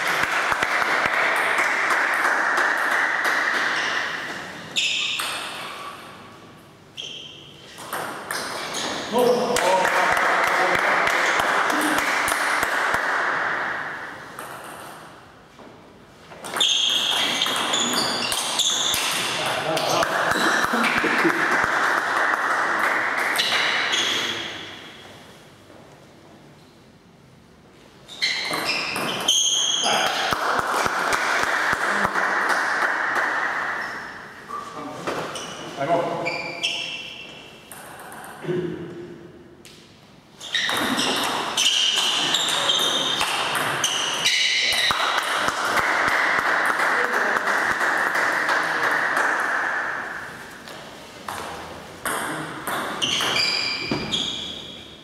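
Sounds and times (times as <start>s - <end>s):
table tennis ball bouncing: 0.0s - 5.8s, 7.0s - 15.3s, 16.3s - 24.8s, 28.3s - 34.2s, 36.7s - 38.4s, 40.5s - 54.8s
voices in a hall: 44.2s - 52.7s.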